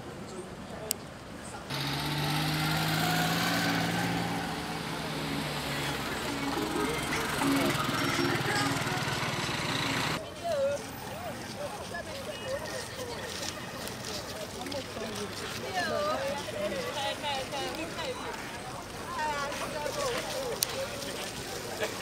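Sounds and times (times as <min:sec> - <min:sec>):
street noise: 0:00.0 - 0:22.0
small engine running: 0:01.7 - 0:10.2
voices: 0:03.6 - 0:22.0.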